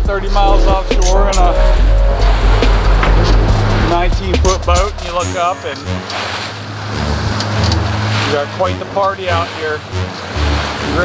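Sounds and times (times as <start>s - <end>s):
choppy sea water: 0.0s - 11.0s.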